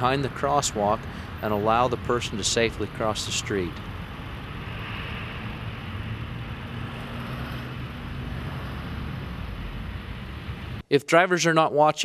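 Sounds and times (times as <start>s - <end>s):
cars driving past: 0.0s - 10.8s
faint engine hum: 0.0s - 10.8s.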